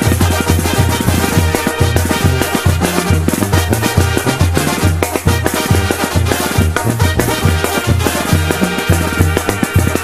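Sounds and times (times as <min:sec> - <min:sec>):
instrumental banda music: 0:00.0 - 0:10.0.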